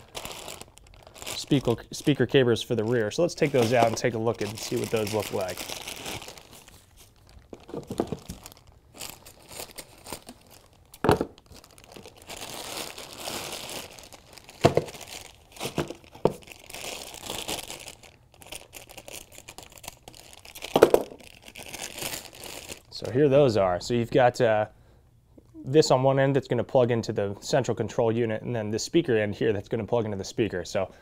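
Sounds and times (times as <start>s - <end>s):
plastic bags crinkling: 0.0s - 23.1s.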